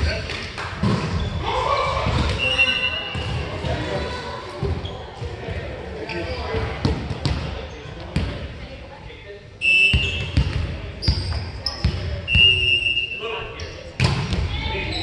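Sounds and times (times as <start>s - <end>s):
players' voices: 0.0s - 15.0s.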